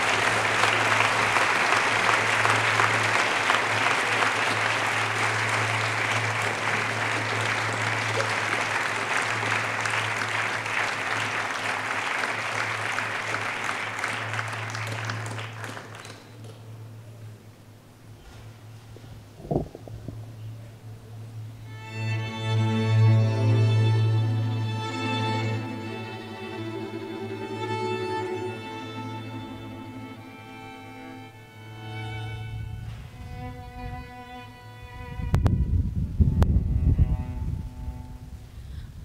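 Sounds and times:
steady low hum: 16.3 - 39.0
microphone handling thumps: 19.0 - 20.3
wind buffeting microphone: 19.3 - 20.3, 35.0 - 39.0.

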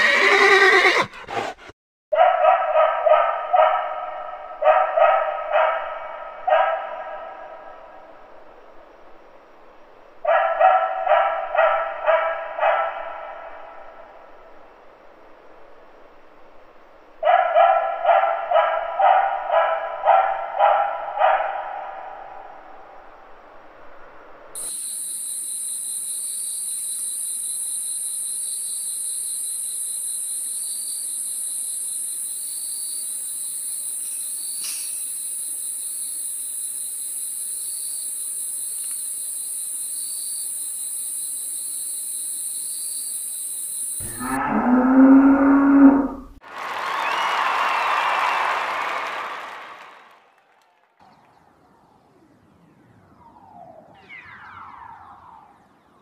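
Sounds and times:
dog barking rapidly: 1.1 - 7.5, 10.3 - 13.4, 17.2 - 22.0.

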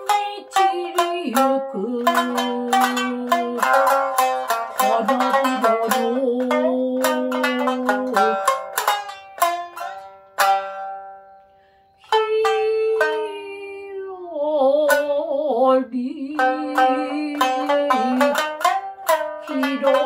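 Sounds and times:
woman singing long held notes: 0.0 - 8.5, 12.0 - 18.4, 19.4 - 20.0
shamisen plucking: 0.0 - 20.0.

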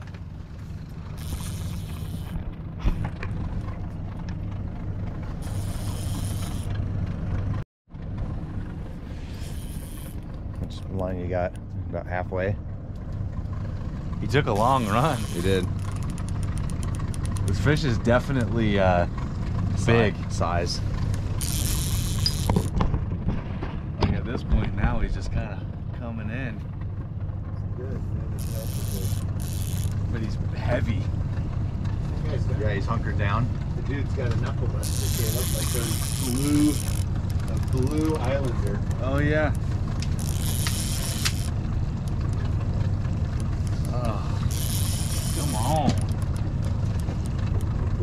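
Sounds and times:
boat motor rumbling: 0.0 - 48.0
fishing reel clicks: 1.2 - 2.4, 5.4 - 6.7, 9.4 - 10.2, 14.6 - 17.5, 21.4 - 22.7, 28.4 - 30.0, 34.8 - 38.0, 40.0 - 42.2, 43.4 - 47.1
sharp ticks: 14.6 - 17.6, 34.8 - 38.0, 43.3 - 47.8.

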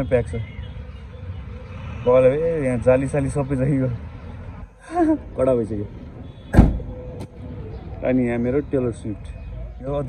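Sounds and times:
car tailgate slamming: 6.5 - 6.9.

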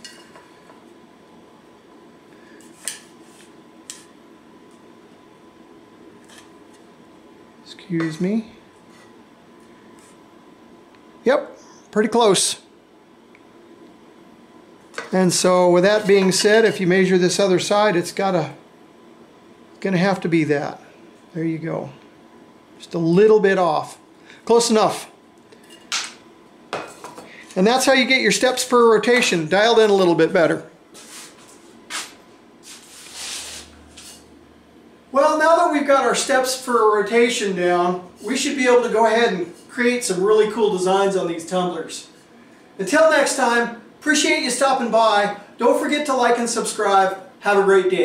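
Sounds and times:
soft rubbing on metal tumbler: 32.6 - 34.3.

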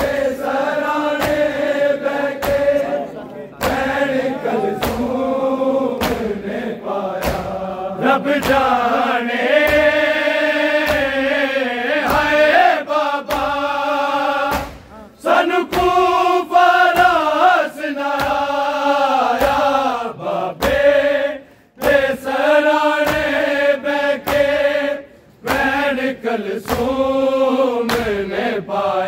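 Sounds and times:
group of men singing: 0.0 - 29.0
hands clapping on chests: 1.0 - 2.9, 3.6 - 5.2, 5.9 - 6.4, 7.1 - 7.6, 8.3 - 8.9, 9.5 - 11.3, 18.0 - 18.6, 21.8 - 24.6, 25.4 - 25.9, 26.5 - 27.2, 27.8 - 28.3.

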